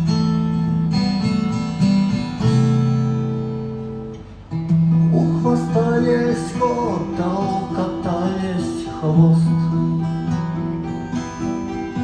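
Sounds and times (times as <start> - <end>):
acoustic guitars strumming chords: 0.0 - 12.0.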